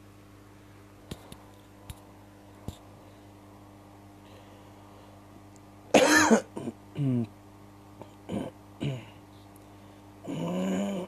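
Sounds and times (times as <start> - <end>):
man clearing his throat: 5.9 - 7.3, 8.3 - 9.2.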